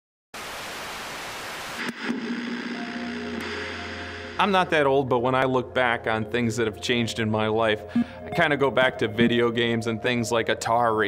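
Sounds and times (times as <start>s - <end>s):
television static hiss: 0.4s - 4.7s
low hum: 1.8s - 4.9s
steady electronic tones: 1.8s - 5.0s.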